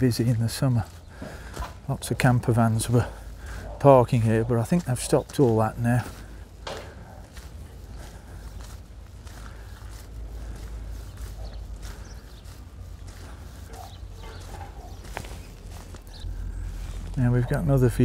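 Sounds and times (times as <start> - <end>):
footsteps on gravel and grass: 0.0 - 18.0
low rumble: 15.2 - 18.0.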